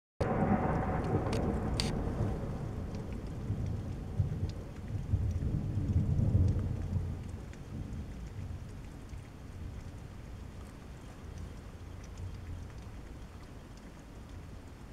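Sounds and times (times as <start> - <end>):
thunder rumbling: 0.2 - 9.2
steady rain: 0.2 - 14.9.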